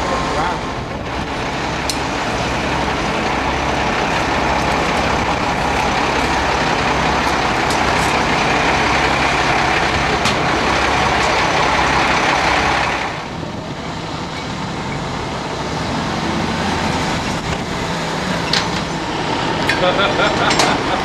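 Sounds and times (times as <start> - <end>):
truck engine running: 0.0 - 21.0.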